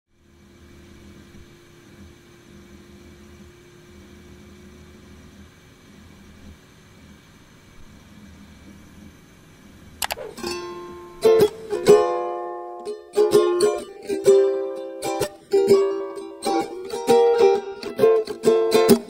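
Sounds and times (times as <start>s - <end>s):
faint hum and hiss: 0.2s - 19.0s
thin held tone: 10.0s - 19.0s.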